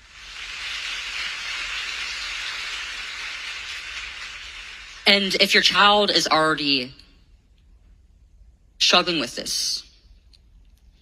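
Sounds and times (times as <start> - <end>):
audience applauding: 0.0 - 6.1.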